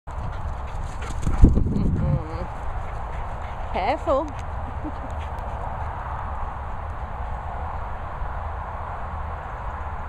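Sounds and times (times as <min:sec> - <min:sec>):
low rumble: 0:01.3 - 0:03.8.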